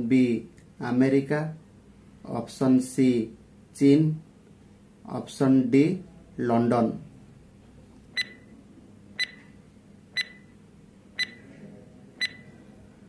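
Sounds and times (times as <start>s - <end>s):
countdown timer beeps: 8.2s - 8.4s, 9.2s - 9.4s, 10.2s - 10.5s, 11.2s - 11.4s, 12.2s - 12.4s.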